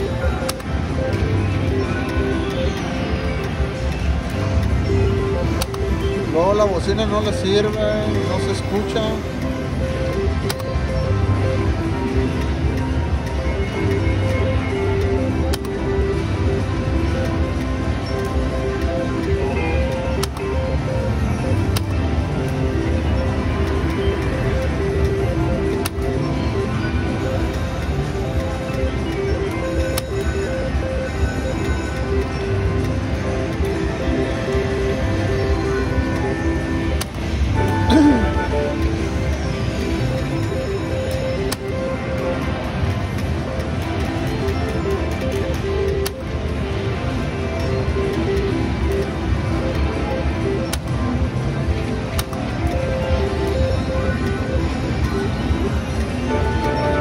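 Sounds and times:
background music with pulsing beat: 0:00.0 - 0:57.0.

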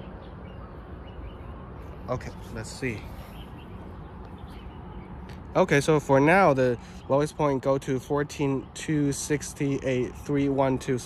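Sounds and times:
faint bird chirps: 0:00.0 - 0:05.3
low outdoor background noise: 0:00.0 - 0:11.0.

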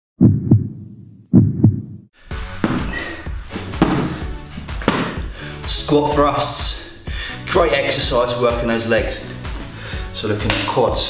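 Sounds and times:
heartbeat thumps: 0:00.2 - 0:05.4.

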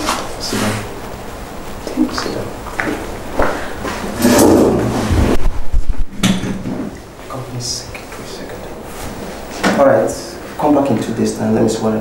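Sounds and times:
office chair scraping and creaking: 0:03.8 - 0:07.0.

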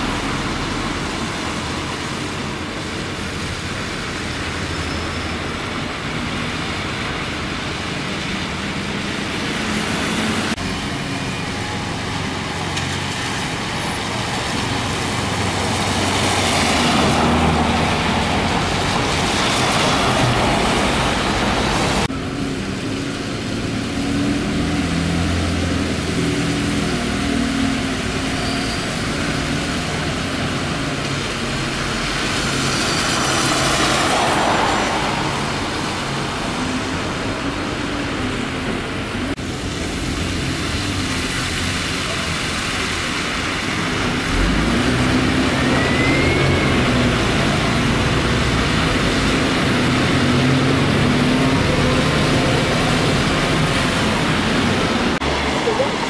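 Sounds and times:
bus engines running: 0:00.0 - 0:56.0
tyres on wet road: 0:00.0 - 0:56.0.

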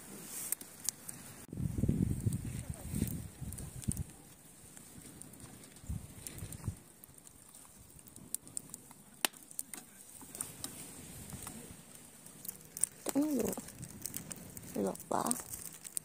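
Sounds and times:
campfire embers crackling: 0:00.0 - 0:16.0.

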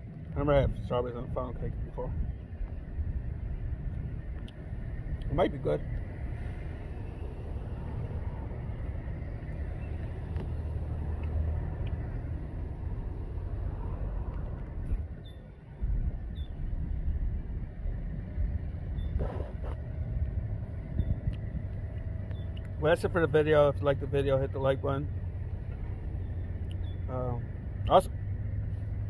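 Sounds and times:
road traffic rumble: 0:00.0 - 0:29.0.

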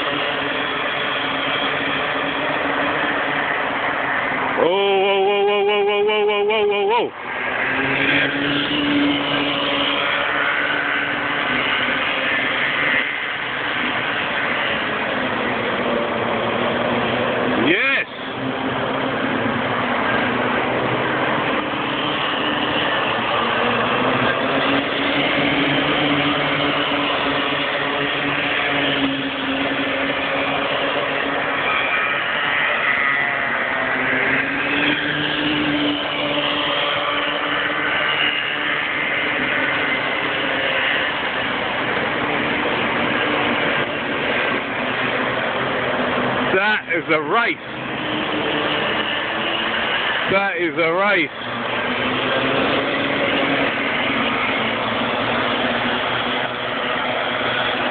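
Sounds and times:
kart engines racing: 0:00.0 - 0:57.9.

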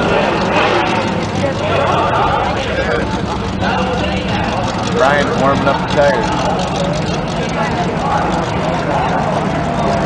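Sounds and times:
spectators' voices: 0:00.0 - 0:10.0
vehicle engine idling: 0:00.0 - 0:10.0.

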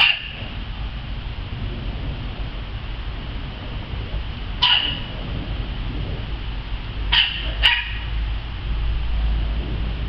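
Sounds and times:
small dog yipping barks: 0:00.0 - 0:00.4, 0:04.6 - 0:05.1, 0:07.1 - 0:08.2.

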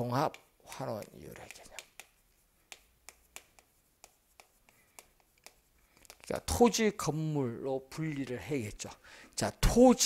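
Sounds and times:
chalk tapping on blackboard: 0:00.2 - 0:06.4.

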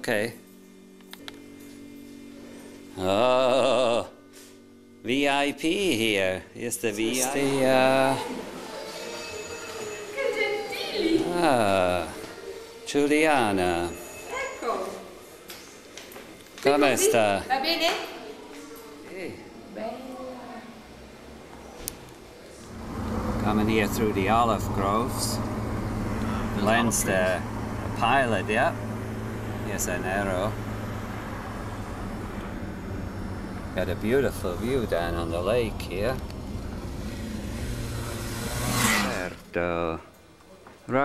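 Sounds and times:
low steady hum: 0:22.6 - 0:39.8
low car cabin rumble: 0:22.7 - 0:38.4.

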